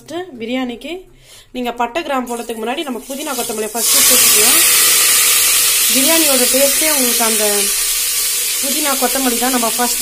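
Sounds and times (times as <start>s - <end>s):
leaves sizzling in hot oil: 3.0s - 10.0s.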